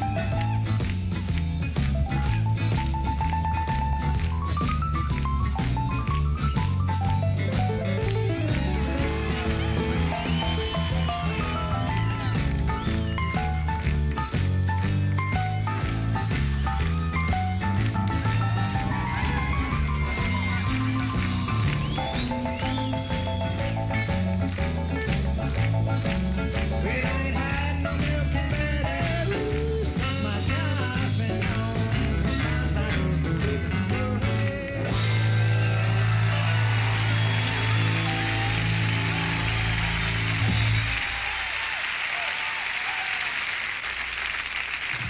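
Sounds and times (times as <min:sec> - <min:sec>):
country band playing: 0:00.0 - 0:41.4
audience applauding: 0:00.0 - 0:45.0.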